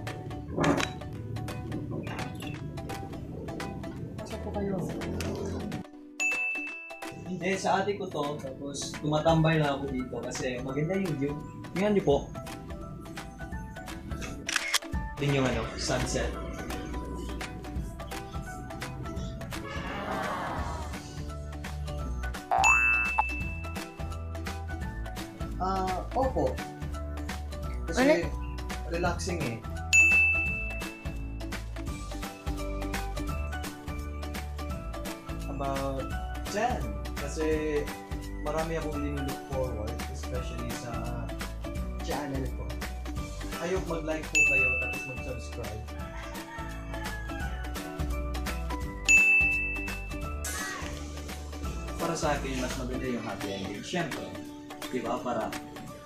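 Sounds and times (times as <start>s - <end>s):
background music with a beat: 5.8s - 11.8s, 20.7s - 56.0s
high-pitched ding: 6.2s - 7.1s, 22.5s - 23.8s, 30.0s - 31.1s, 44.4s - 45.2s, 49.1s - 50.4s
cartoon boing sound effect: 22.5s - 23.0s.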